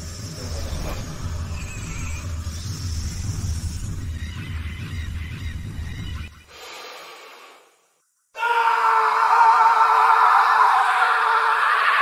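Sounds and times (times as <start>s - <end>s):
loud wavering scream: 8.4s - 12.0s.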